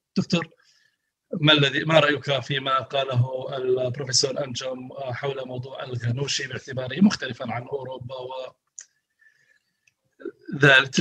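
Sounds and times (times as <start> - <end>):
man's voice over video call: 0.0 - 0.6, 1.3 - 8.9, 10.2 - 11.0.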